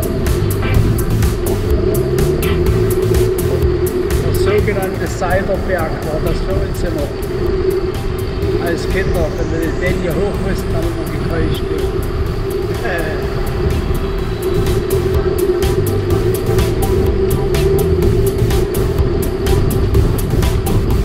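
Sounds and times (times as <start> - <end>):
shifting bass line: 0.0 - 21.0
sustained steady tone: 0.0 - 21.0.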